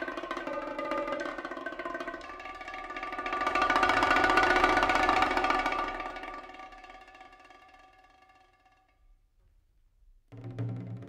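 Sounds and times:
stick roll on tuned drums: 0:00.0 - 0:07.6, 0:10.3 - 0:11.0.

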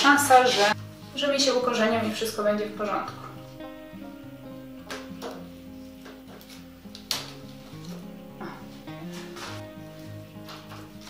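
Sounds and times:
soft instrumental music: 0:00.0 - 0:11.0.

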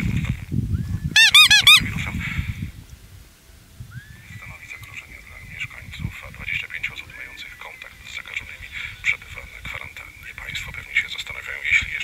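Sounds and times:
squeeze toy squeaking: 0:01.2 - 0:01.8.

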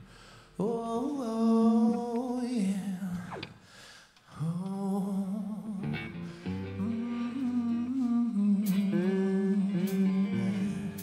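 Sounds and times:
person singing a long note: 0:04.4 - 0:11.0
electric guitar: 0:05.4 - 0:11.0.

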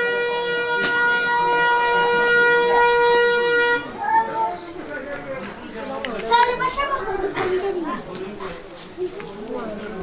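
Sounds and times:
long steady horn blast: 0:00.0 - 0:04.0
faint voices: 0:00.0 - 0:10.0.

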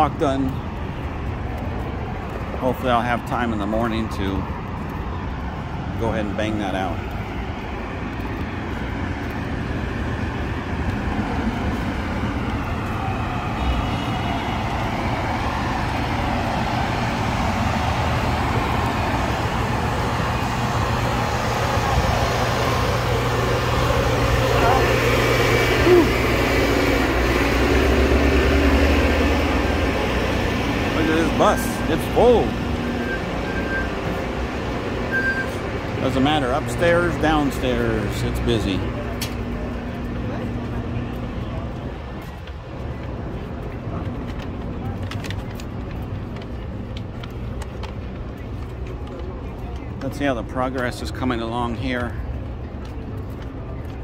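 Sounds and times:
bus engine rumbling: 0:00.0 - 0:54.0
street traffic: 0:00.0 - 0:54.0
people talking: 0:02.6 - 0:04.4, 0:24.5 - 0:25.0, 0:30.9 - 0:32.6, 0:36.0 - 0:41.8, 0:48.4 - 0:52.2.

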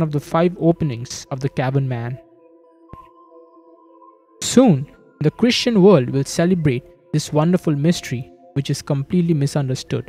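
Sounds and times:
soft ambient music: 0:00.0 - 0:10.0.

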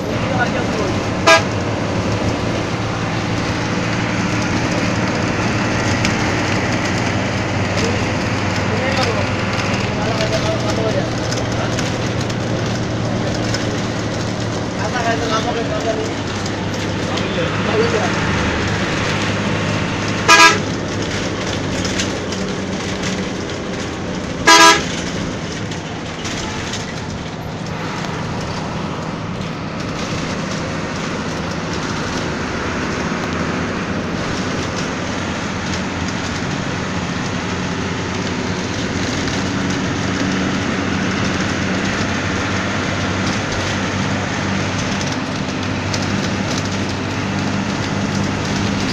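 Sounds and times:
coach engine and road noise: 0:00.0 - 0:48.9
horn blasts: 0:01.2 - 0:01.6, 0:20.2 - 0:20.8, 0:24.4 - 0:25.0.

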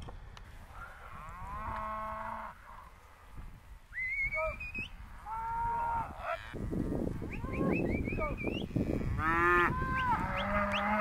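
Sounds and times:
young cattle mooing: 0:08.7 - 0:11.0.

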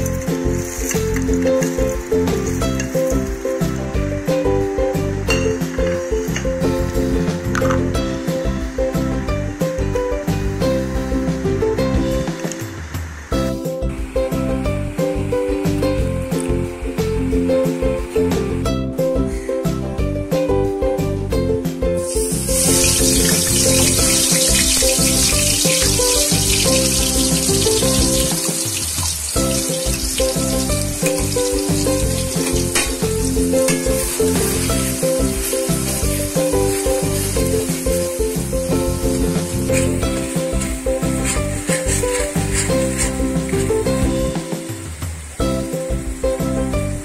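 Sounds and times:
paste sizzling in hot oil: 0:00.0 - 0:09.8, 0:22.0 - 0:47.0
background music with beat: 0:00.0 - 0:47.0
metal spatula scraping: 0:29.5 - 0:38.3, 0:39.1 - 0:43.8.

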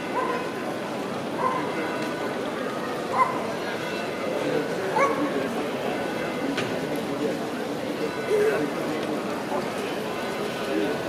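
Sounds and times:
crowd chatter: 0:00.0 - 0:11.0
small dog yipping: 0:03.1 - 0:03.4.

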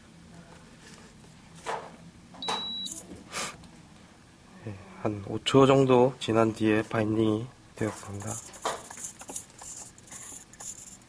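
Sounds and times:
short high electronic beep: 0:02.4 - 0:03.0.

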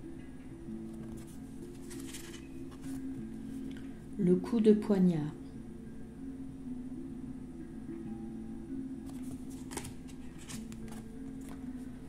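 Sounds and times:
soft background music: 0:00.0 - 0:12.0
cards sliding and clicking: 0:01.1 - 0:03.0, 0:09.1 - 0:11.6.

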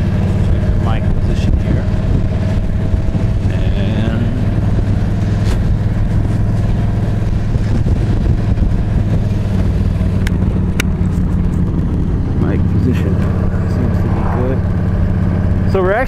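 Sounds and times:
motorcycle engine running: 0:00.0 - 0:16.0
wind rush: 0:04.4 - 0:15.7.

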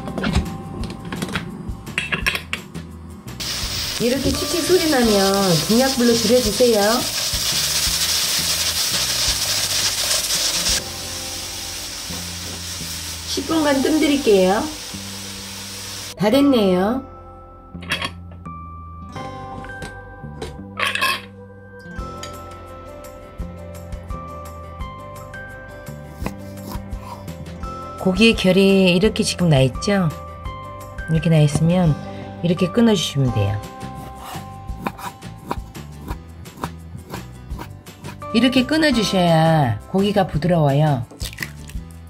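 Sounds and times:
background music: 0:00.0 - 0:42.0
pressure cooker steam hissing: 0:03.4 - 0:16.2.

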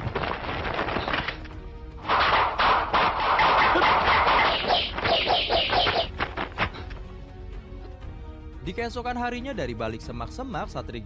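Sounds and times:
short repeated calls: 0:03.6 - 0:06.2.

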